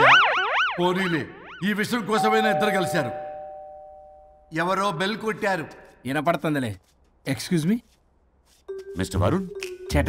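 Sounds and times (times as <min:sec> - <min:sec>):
two-tone doorbell chime: 0:02.2 - 0:04.5.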